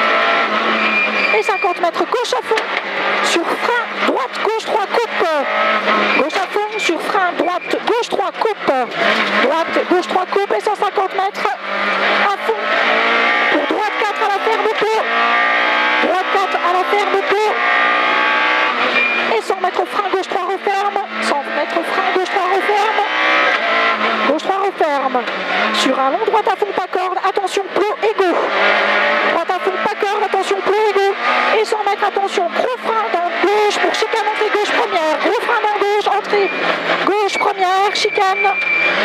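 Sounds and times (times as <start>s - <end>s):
rally car engine at full throttle: 0.0s - 39.0s.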